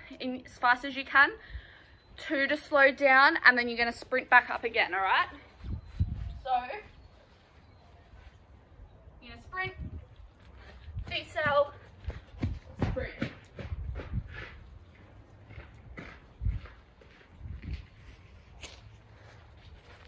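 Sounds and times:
running footsteps on grass: 0:10.2 - 0:20.0.

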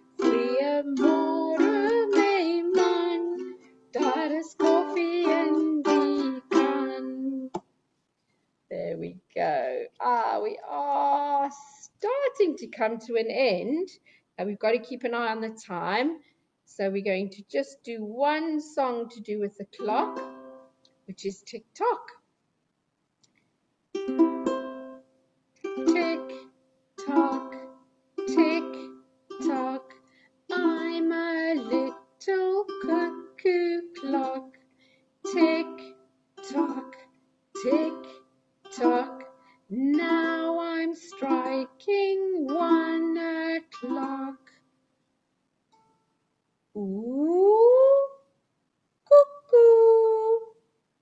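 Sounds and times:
ukulele strumming: 0:00.0 - 0:07.6, 0:19.8 - 0:20.7, 0:24.0 - 0:25.0, 0:25.6 - 0:34.5, 0:35.2 - 0:37.0, 0:37.6 - 0:44.2
woman singing: 0:00.0 - 0:07.6, 0:08.7 - 0:12.8, 0:25.8 - 0:34.6, 0:35.3 - 0:37.0, 0:37.6 - 0:44.5.

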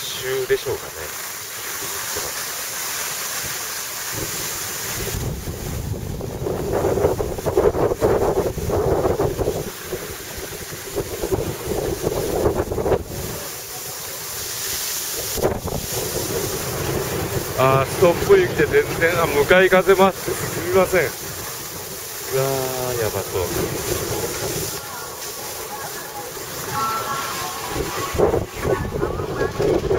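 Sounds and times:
wind rushing over microphone: 0:04.1 - 0:13.5, 0:15.2 - 0:25.0, 0:26.0 - 0:29.9
skis scraping over snow: 0:14.6 - 0:29.9.

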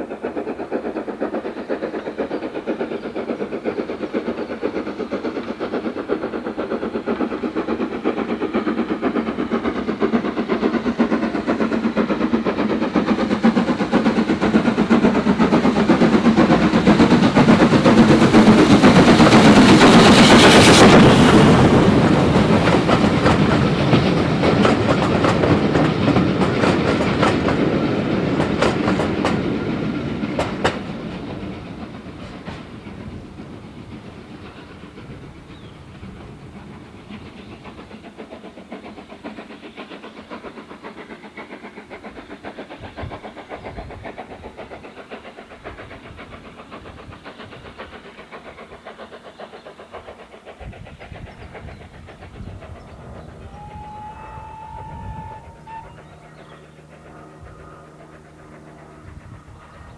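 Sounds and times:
steam locomotive exhaust: 0:00.0 - 0:59.9
train wheels clicking over rail joints: 0:00.0 - 0:59.9.

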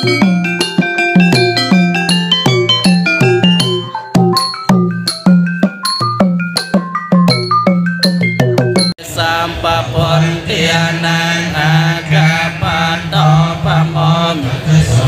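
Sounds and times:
struck bell-like notes: 0:00.0 - 0:09.0
monks chanting in unison: 0:09.0 - 0:15.0.

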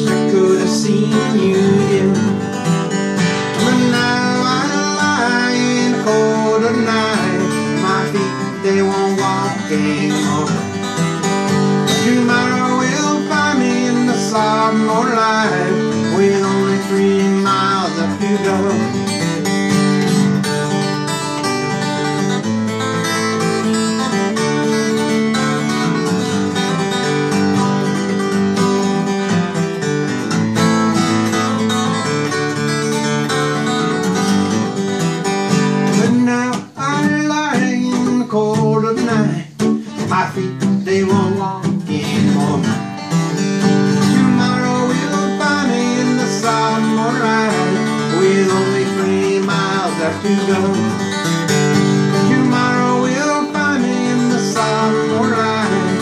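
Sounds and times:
acoustic guitar picking chords: 0:00.0 - 0:56.0.

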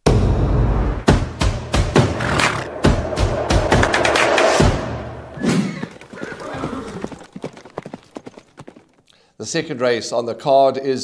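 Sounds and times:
horse whinny: 0:05.4 - 0:07.5
horse hoofbeats galloping: 0:05.5 - 0:09.1.

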